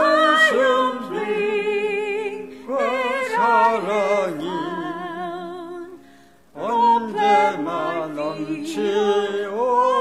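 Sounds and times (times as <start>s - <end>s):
woman singing unaccompanied: 0.0s - 6.0s, 6.6s - 10.0s.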